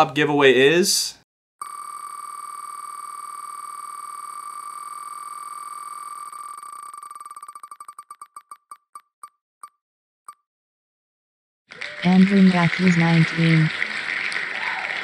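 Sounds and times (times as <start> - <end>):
spinning wheel ticks: 5.7 - 9.0.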